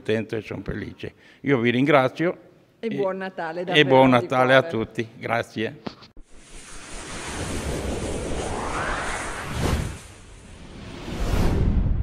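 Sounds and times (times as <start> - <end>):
rising sweep: 6.2 - 12.0
rushing whoosh: 6.2 - 12.0.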